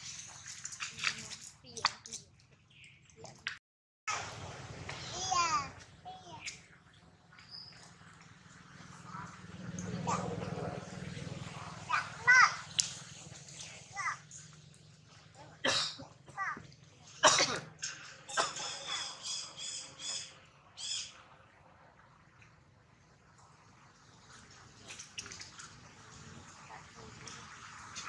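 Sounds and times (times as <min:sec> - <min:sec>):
macaques squeaking and chirping: 0:18.3 - 0:21.1.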